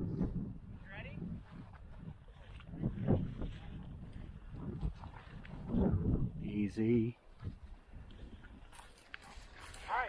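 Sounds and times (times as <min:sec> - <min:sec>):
footsteps crunching through dry grass: 0:00.1 - 0:06.3, 0:07.0 - 0:10.0
twigs and clothing rustling: 0:00.1 - 0:10.0.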